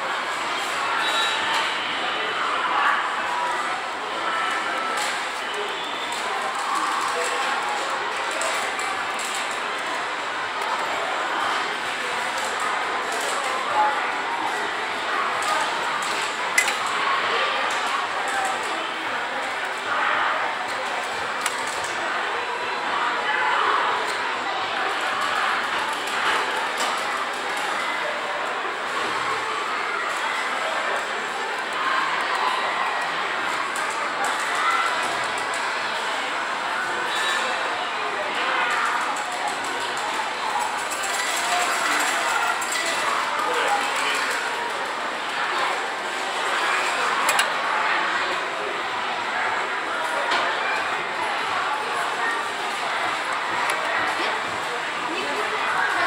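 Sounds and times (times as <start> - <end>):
indistinct voices: 0.0 - 56.0
arcade machine sounds: 45.8 - 47.7.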